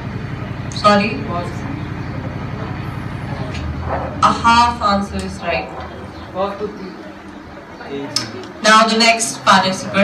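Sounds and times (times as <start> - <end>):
low pulsing engine rumble: 0.0 - 8.1.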